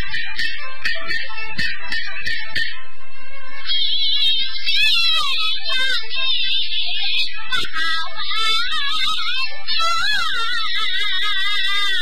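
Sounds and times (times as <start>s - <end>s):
light musical accompaniment: 0.0s - 12.0s
opera singing with vibrato: 3.7s - 12.0s.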